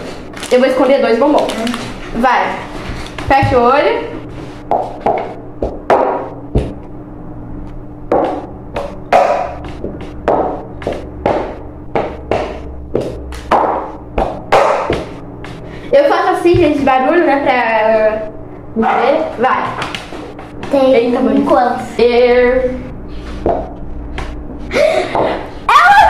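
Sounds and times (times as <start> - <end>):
plastic bowls knocking on a table: 4.7 - 6.8, 8.1 - 15.1.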